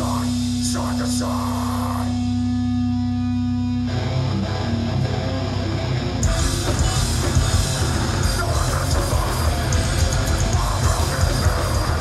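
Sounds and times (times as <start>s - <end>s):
loud electric guitar riff: 0.0s - 12.0s
punk band playing live: 0.0s - 12.0s.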